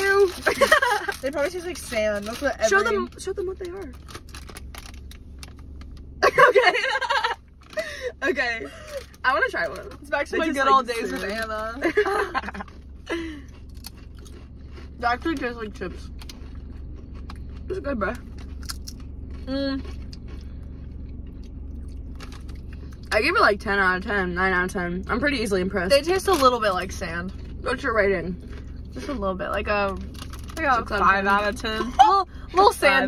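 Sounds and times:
plastic snack bag crinkling: 0.0 - 5.9, 10.9 - 11.7, 30.0 - 30.6
low hum: 0.0 - 33.0
person chewing crunchy chips: 11.0 - 23.1, 30.0 - 30.6.

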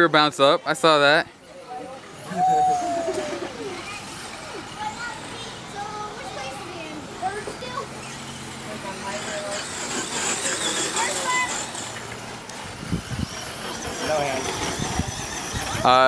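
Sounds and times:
faint voices: 1.2 - 16.0
tyres on dirt: 2.2 - 16.0.

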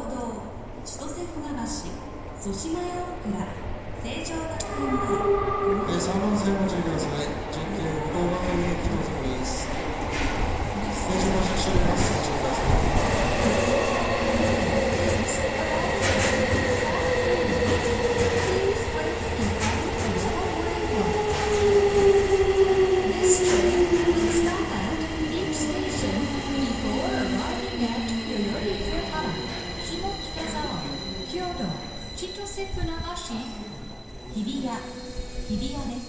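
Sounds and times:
rumble of train wheels: 0.0 - 36.0
rail joint clicks: 14.3 - 21.7, 23.2 - 30.8.

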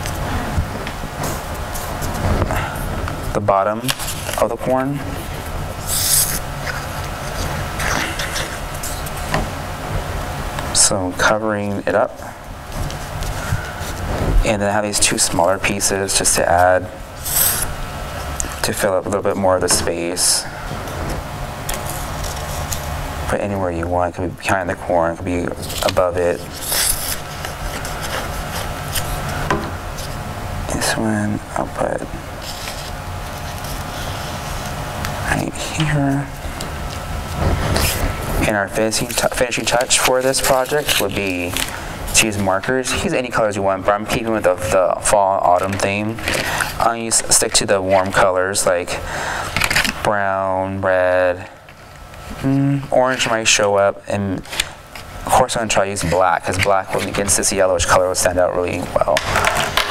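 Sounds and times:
steady low hum: 0.0 - 59.9
glue bottle hissing sputter: 5.8 - 6.4, 17.2 - 17.7.

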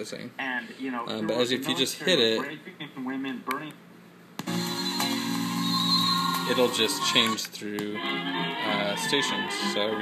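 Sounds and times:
music with held notes: 4.5 - 7.2.

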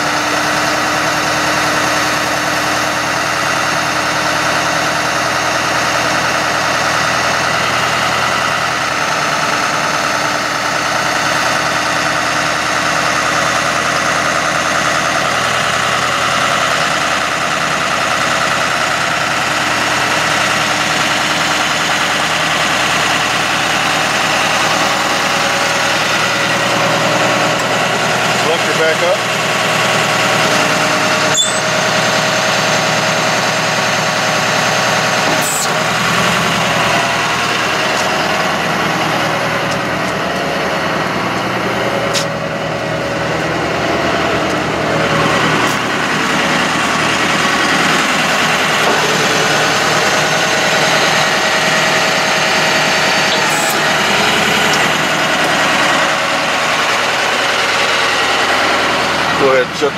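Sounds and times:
truck engine droning: 0.0 - 59.9.

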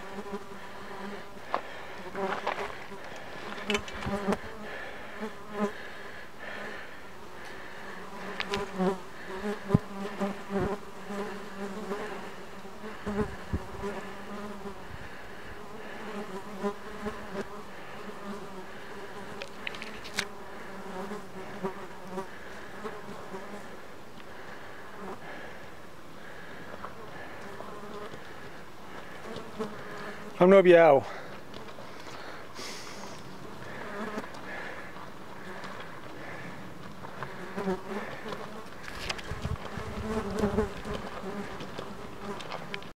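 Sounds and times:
flying insects buzzing: 0.0 - 42.9.

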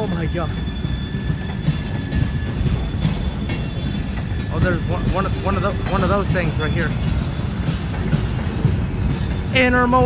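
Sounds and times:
train wheels rumbling on rails: 0.0 - 10.0.

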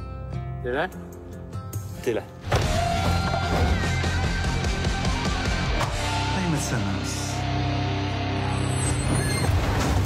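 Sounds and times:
quiet trailer music: 0.0 - 10.0
loud music with held tone: 3.7 - 6.4.

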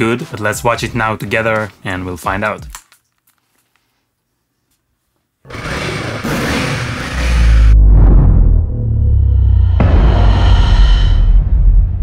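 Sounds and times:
deep rumbling boom: 7.2 - 12.0.

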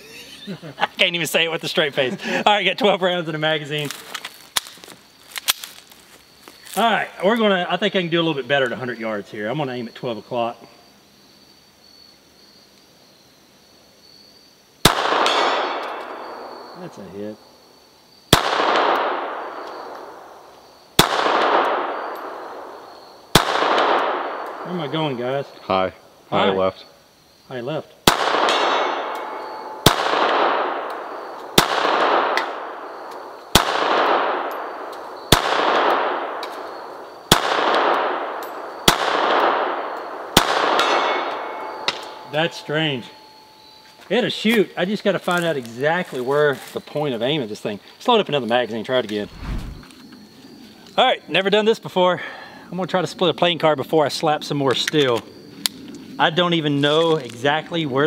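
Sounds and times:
high insect chirring: 0.0 - 14.7, 21.9 - 23.3, 24.3 - 27.9, 28.9 - 29.9, 36.3 - 37.3, 41.3 - 51.6
pistol shot: 14.8 - 16.6, 18.3 - 20.2, 21.0 - 22.7, 23.3 - 24.6, 28.0 - 31.0, 31.6 - 32.9, 33.5 - 36.6, 37.3 - 42.2.

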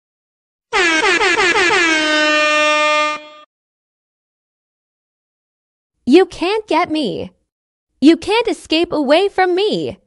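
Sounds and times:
air horn blasts: 0.7 - 3.5.

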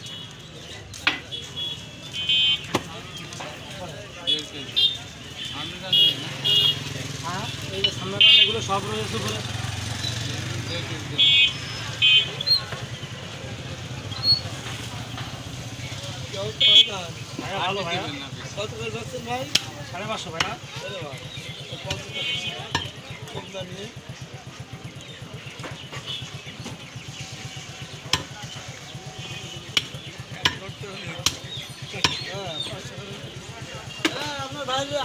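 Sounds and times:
vehicle horn toot: 1.2 - 2.8, 4.3 - 8.8, 11.1 - 12.6, 16.6 - 17.1, 21.8 - 22.9
small engine idling: 20.0 - 34.6.

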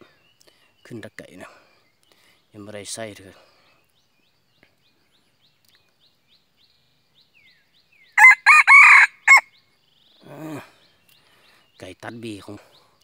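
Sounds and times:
rooster crowing: 8.2 - 9.5.

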